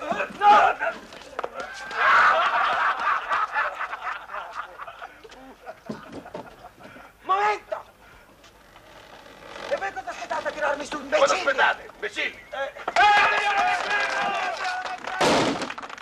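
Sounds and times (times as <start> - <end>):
loud exclamation: 1.5 - 2.6, 9.7 - 15.4
indistinct voices speaking: 9.6 - 15.0.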